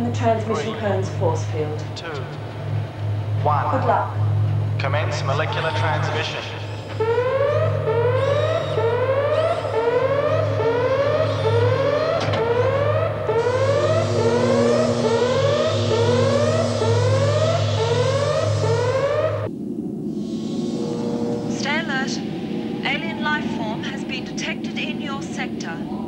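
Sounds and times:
steady low hum: 0.0 - 26.0
rising electronic whoop: 7.1 - 19.5.

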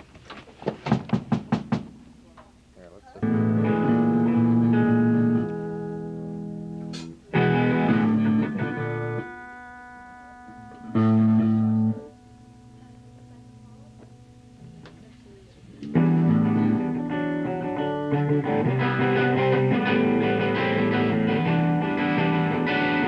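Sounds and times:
electric guitar chords: 3.2 - 23.0.

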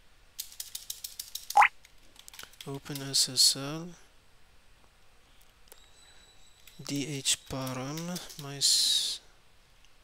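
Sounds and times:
keyboard typing: 0.6 - 2.6.

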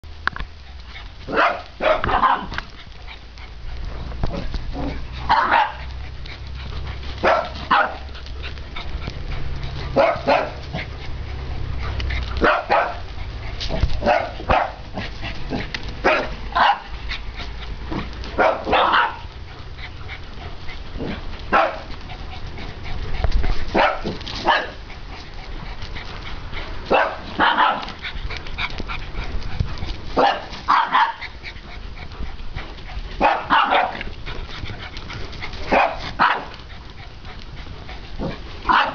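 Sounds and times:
dog barking: 1.3 - 2.5, 5.3 - 5.8, 7.2 - 8.1, 9.9 - 10.6, 12.4 - 13.0, 14.0 - 14.8, 16.0 - 16.9, 18.4 - 19.3, 21.5 - 21.9, 23.7 - 24.8, 26.9 - 27.9, 30.2 - 31.2, 33.2 - 34.0, 35.7 - 36.5, 38.7 - 38.9.

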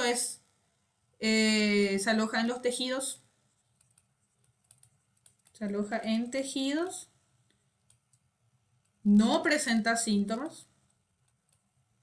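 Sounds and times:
stylus tapping tablet screen: 3.5 - 6.8, 7.4 - 9.0, 10.8 - 12.0.

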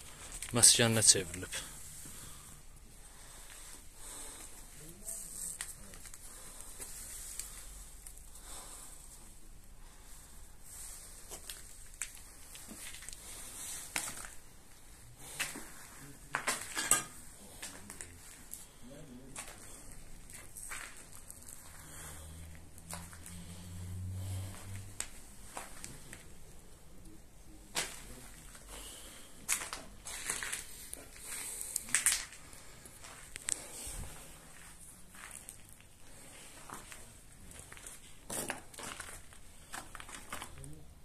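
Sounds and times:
footsteps crunching on rubble: 19.4 - 23.3, 27.7 - 40.7.

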